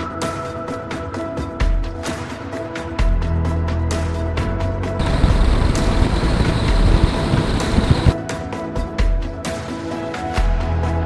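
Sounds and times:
background music: 0.0 - 11.0
road and tyre noise: 5.0 - 8.2.

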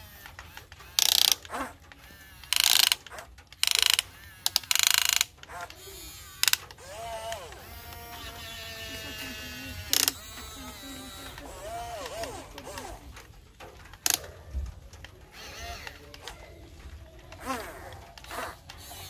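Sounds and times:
toy electric motors whirring: 0.0 - 19.0.

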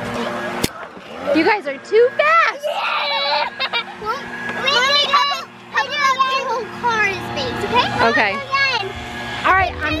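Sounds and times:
children squealing and calling out: 1.0 - 9.2.

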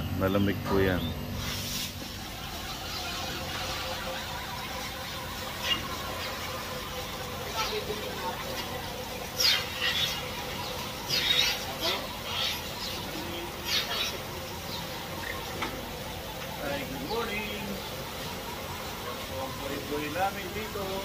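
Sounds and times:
milking machinery running: 0.0 - 21.0.

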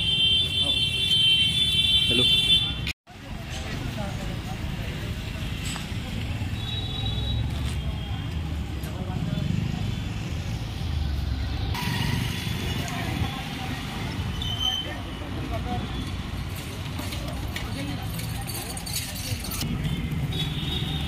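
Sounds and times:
road traffic and motorcycles: 0.0 - 21.0.

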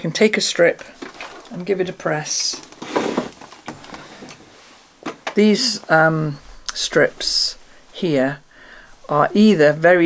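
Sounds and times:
iron clicks and rustles: 0.8 - 5.6.

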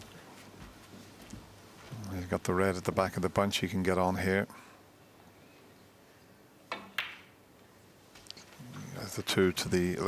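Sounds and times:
cue tip striking ball: 6.7 - 7.3
snooker balls clicking: 6.7 - 7.3.

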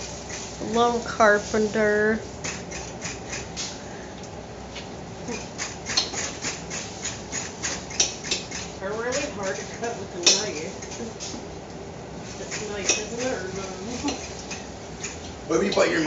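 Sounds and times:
utensil stirring in frying pan: 0.0 - 3.7.

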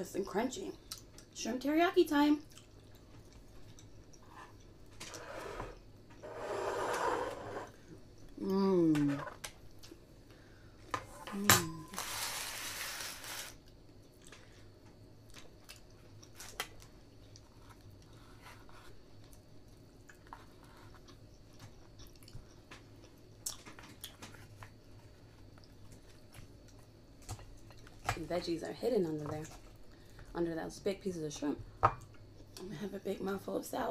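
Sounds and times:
chewing and eating: 2.4 - 5.2, 13.6 - 28.2.

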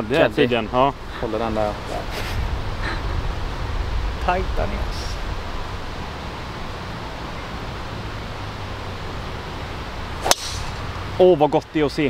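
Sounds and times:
low outdoor background: 0.0 - 12.0
golf club striking ball: 10.2 - 10.9.

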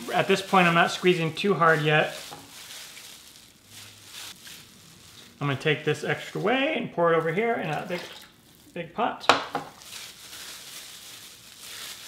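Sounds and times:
wet squelching curd: 0.0 - 8.8.

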